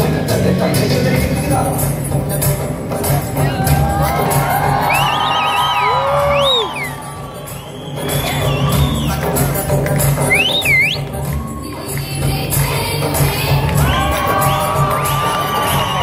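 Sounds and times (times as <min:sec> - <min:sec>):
dance music with bass beat: 0:00.0 - 0:16.0
audience cheering and whooping: 0:03.4 - 0:16.0.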